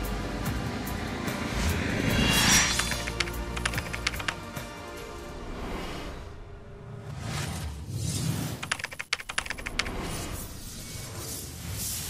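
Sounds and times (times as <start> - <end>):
low rushing sweep: 0.7 - 3.6
fast run of sharp clicks: 2.7 - 4.4, 8.6 - 10.1.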